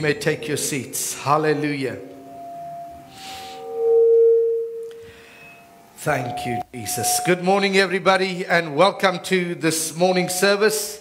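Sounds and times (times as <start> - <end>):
keyboard sustained notes: 0.0 - 8.0.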